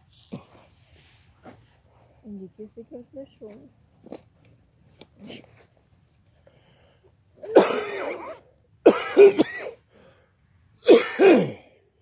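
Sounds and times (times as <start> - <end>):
person coughing: 7.4 - 9.8, 10.9 - 11.7.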